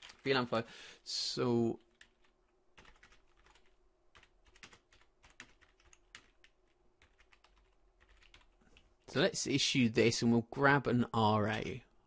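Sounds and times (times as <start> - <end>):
computer keyboard typing: 0.0 - 0.3, 1.8 - 9.0.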